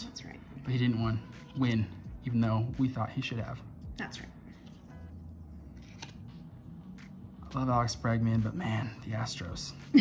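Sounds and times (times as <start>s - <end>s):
trading cards being shuffled: 5.6s - 7.2s
card clicks: 5.7s - 6.3s.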